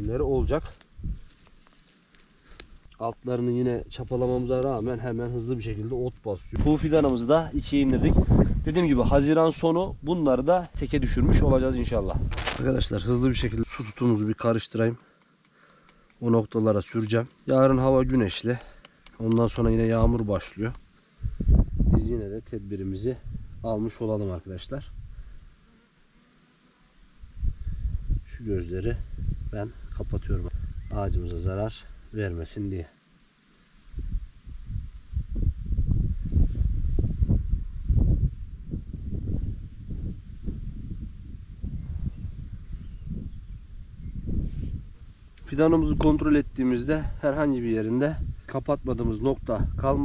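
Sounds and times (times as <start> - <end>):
faint insect chirping: 0.0 - 50.0
hands rustling on plant stem: 0.6 - 2.9
small clicks of buds: 0.7 - 3.0, 15.2 - 16.2, 18.7 - 19.5.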